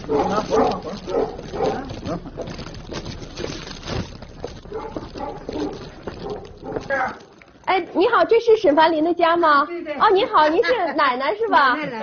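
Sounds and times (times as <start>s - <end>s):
dog barking: 0.0s - 2.0s, 4.7s - 7.0s.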